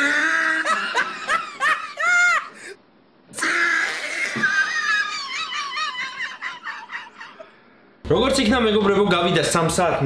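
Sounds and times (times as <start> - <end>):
loud laughter: 0.0 - 2.6, 3.4 - 7.6.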